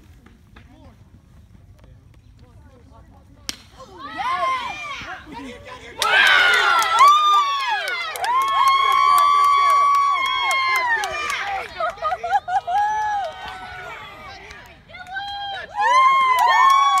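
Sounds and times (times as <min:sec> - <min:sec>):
spectators yelling and cheering: 0:04.0 - 0:17.0.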